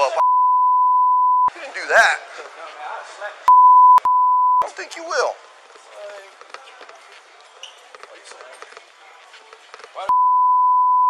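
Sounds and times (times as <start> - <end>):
censor bleep: 0.2 - 1.5, 3.5 - 4.6, 10.1 - 11.0.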